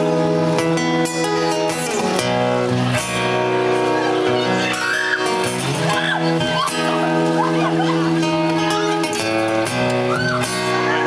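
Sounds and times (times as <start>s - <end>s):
electric bass: 0.0s - 11.0s
strummed acoustic guitars: 0.0s - 11.0s.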